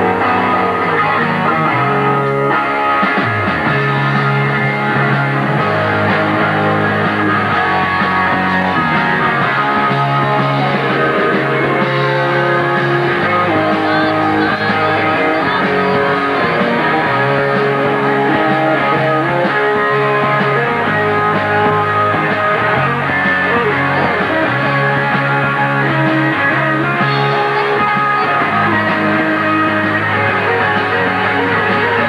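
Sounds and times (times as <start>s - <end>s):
electric guitar: 0.0s - 32.0s
punk rock band playing: 0.0s - 32.0s.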